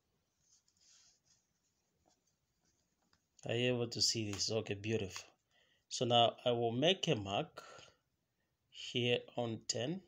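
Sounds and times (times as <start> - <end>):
ruler rustling on paper: 0.1 - 3.4.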